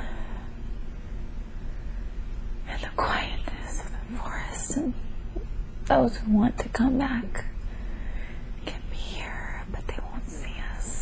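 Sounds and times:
woman whispering: 0:02.6 - 0:05.0, 0:08.6 - 0:11.0.

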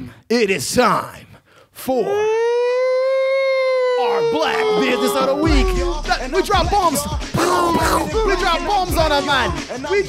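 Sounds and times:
man belting a long held note: 0:04.0 - 0:06.4, 0:07.3 - 0:08.9.

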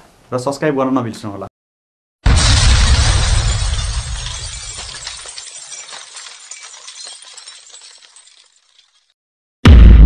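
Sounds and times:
loud crash with deep boom: 0:02.2 - 0:05.2, 0:09.6 - 0:10.0
crackling tinkling debris: 0:02.3 - 0:09.2.

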